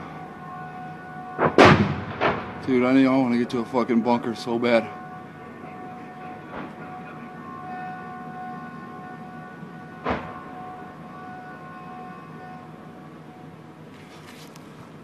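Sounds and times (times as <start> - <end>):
warning siren: 0.0 - 14.4.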